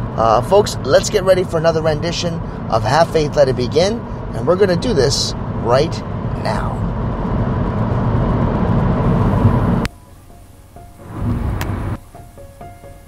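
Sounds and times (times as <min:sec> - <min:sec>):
low rumble: 0:00.0 - 0:12.0
road noise inside moving car: 0:00.0 - 0:13.0
faint music notes: 0:09.9 - 0:13.0.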